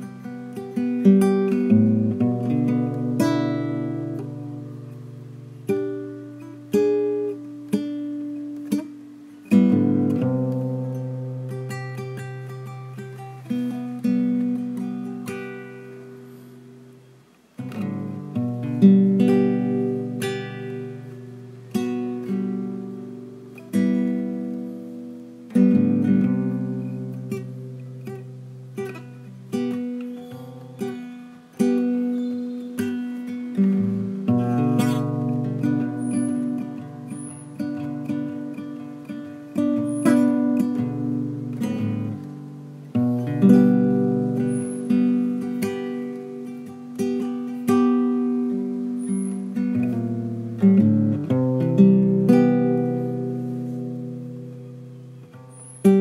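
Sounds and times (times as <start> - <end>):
acoustic guitar plucked notes: 0.0 - 56.0.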